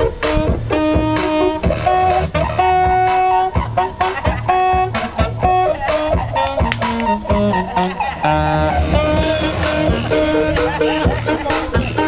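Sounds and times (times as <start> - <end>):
backing music over loudspeaker: 0.0 - 12.0
saxophone melody: 0.0 - 12.0.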